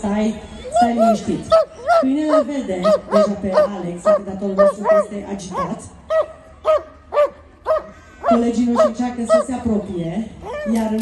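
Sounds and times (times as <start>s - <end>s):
dog barking: 2.8s - 9.4s.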